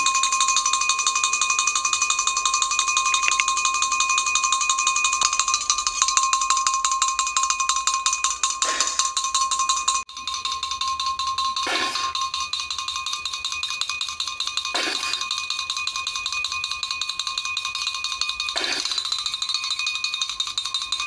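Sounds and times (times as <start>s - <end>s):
fast metallic ringing rattle: 0.0s - 21.0s.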